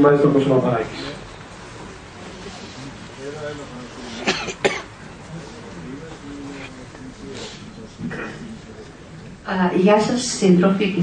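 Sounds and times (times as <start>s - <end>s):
faint voices: 0.1s - 11.0s
person coughing: 4.2s - 4.9s, 8.1s - 8.5s.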